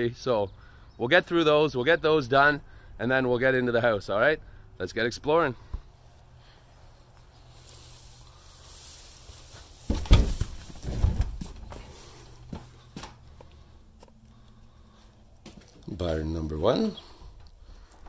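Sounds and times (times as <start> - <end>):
footsteps: 5.6 - 16.0
handling noise: 8.9 - 14.5
heavy thumps: 9.6 - 13.5.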